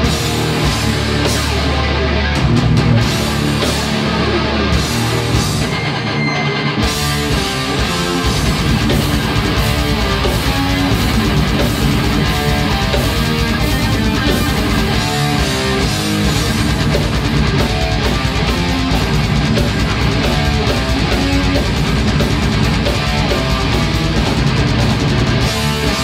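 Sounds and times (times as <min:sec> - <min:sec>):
metal band playing live: 0:00.0 - 0:26.0.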